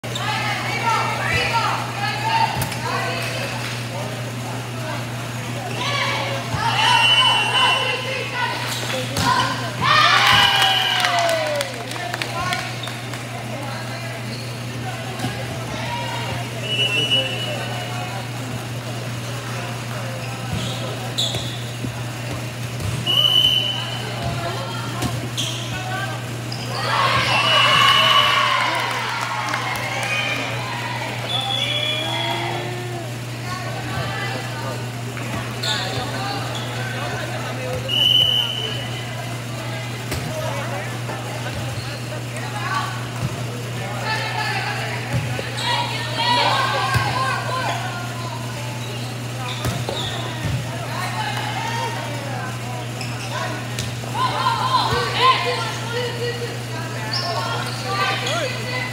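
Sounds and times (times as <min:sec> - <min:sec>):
players shouting and calling: 0:00.0 - 0:58.9
shoe squeaks: 0:14.2 - 0:14.7, 0:20.2 - 0:21.8, 0:25.2 - 0:26.8, 0:35.5 - 0:36.9, 0:48.7 - 0:50.4, 0:53.0 - 0:53.6, 0:57.0 - 0:58.5.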